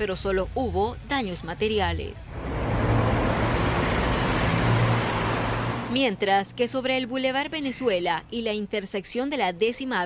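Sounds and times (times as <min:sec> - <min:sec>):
road traffic noise: 0:00.0 - 0:08.4
low engine hum: 0:01.8 - 0:06.4.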